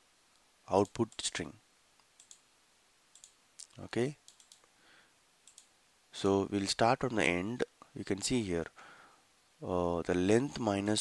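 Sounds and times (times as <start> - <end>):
faint computer mouse clicks: 2.0 - 2.4, 3.1 - 4.8, 5.4 - 5.7.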